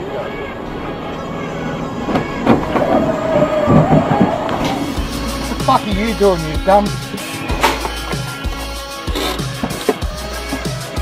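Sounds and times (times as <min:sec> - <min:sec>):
road noise inside car: 0:00.0 - 0:05.8
steady high tone: 0:04.6 - 0:09.0.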